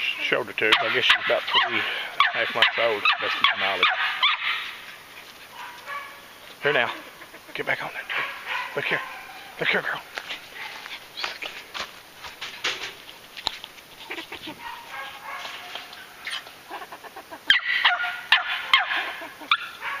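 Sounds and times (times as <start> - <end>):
puppy barking and yipping: 0.7 - 6.3, 8.1 - 9.6, 14.0 - 16.9, 17.5 - 20.0.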